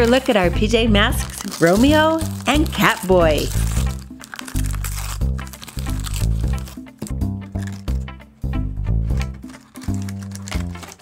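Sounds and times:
wrapping paper tearing and crinkling: 0.0s - 8.1s, 9.1s - 11.0s
background music: 0.0s - 11.0s.

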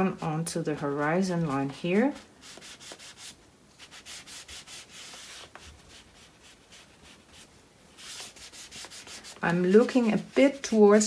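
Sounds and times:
paper towel rubbing on paper: 1.0s - 11.0s.

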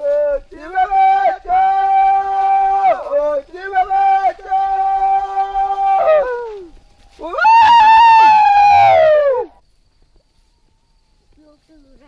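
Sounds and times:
high chanting calls: 0.0s - 9.6s.

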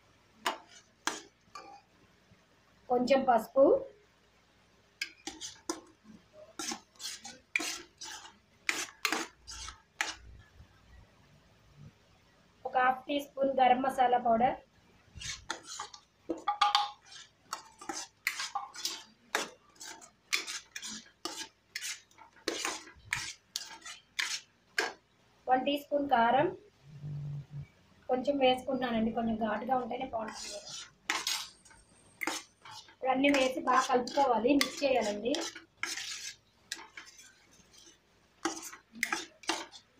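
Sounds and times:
metal spoon scraping a pan: 0.4s - 1.9s, 5.0s - 10.4s, 15.1s - 25.0s, 29.7s - 39.9s.

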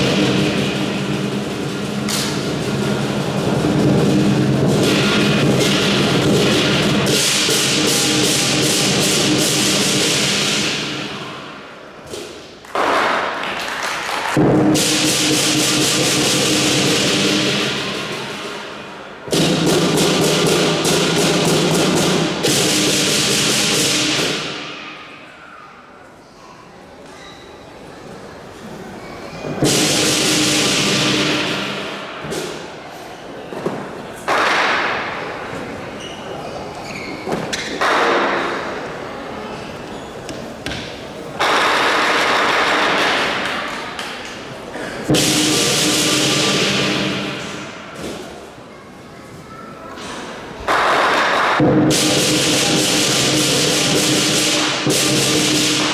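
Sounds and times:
cymbal crash: 0.0s - 11.6s, 29.6s - 32.6s, 45.1s - 48.0s, 51.6s - 55.9s
lion dance drum gong and cymbals: 0.0s - 11.9s, 14.3s - 25.6s, 29.4s - 33.2s, 41.3s - 48.6s, 50.7s - 55.9s.

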